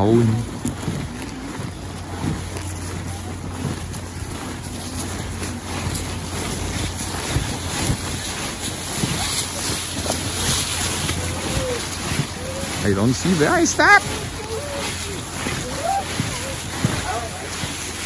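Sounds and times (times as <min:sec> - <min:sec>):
faint voices: 0:00.0 - 0:18.0
footsteps in dry leaves: 0:00.0 - 0:18.0
wind buffeting microphone: 0:00.0 - 0:18.0.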